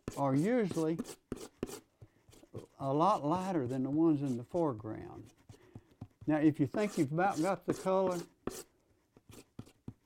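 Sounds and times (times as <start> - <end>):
palette knife scraping and tapping: 0.0 - 10.0.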